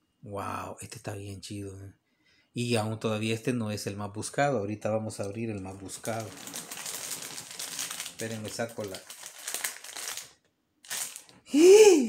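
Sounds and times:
person's vocal outburst: 0:11.5 - 0:12.0.

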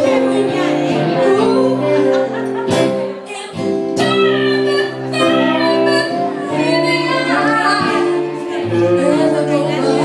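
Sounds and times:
acoustic and electric guitar: 0:00.0 - 0:10.0
woman singing blues ballad: 0:00.0 - 0:10.0.

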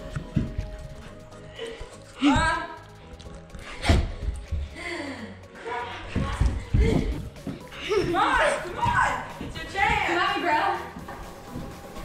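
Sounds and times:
running footsteps on carpet: 0:00.0 - 0:01.3, 0:06.0 - 0:12.0
background music: 0:00.0 - 0:12.0.

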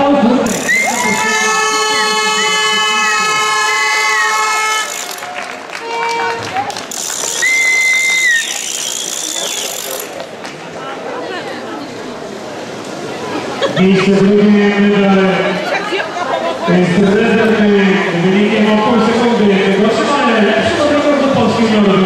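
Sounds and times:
spectators applauding and cheering: 0:00.5 - 0:11.1.

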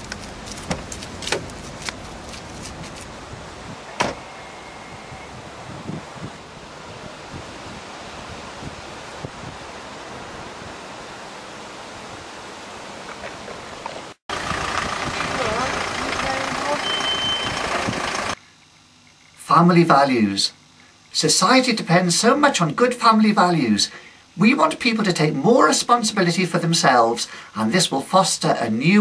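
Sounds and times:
wind on microphone: 0:01.4 - 0:11.1.

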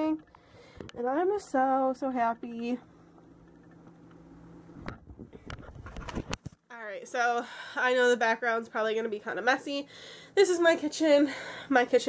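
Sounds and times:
faint steady hum: 0:00.0 - 0:12.0
camera handling knocks and rustling: 0:04.9 - 0:06.6.

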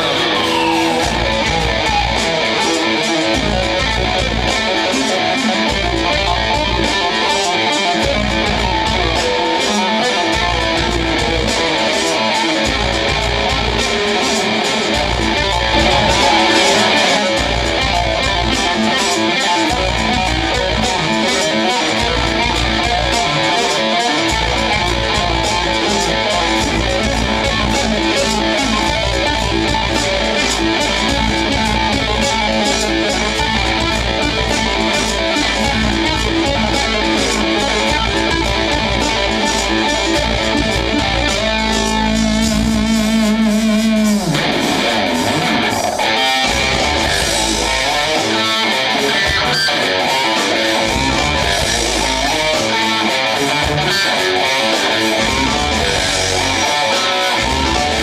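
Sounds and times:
electric guitar through amplifier: 0:00.0 - 0:58.0.

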